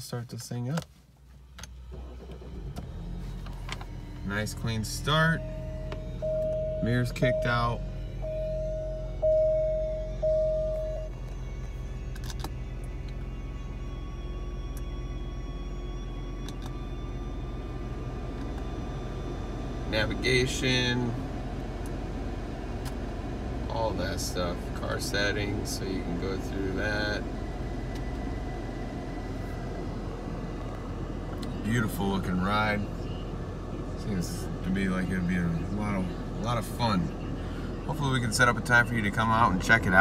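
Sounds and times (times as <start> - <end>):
car engine idling: 0.0 - 40.0
car warning chime beeps: 3.8 - 12.0, 23.7 - 40.0.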